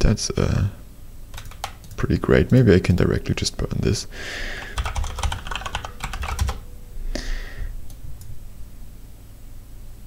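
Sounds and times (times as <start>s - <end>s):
typing on computer keyboard: 1.3s - 2.0s, 4.6s - 6.6s.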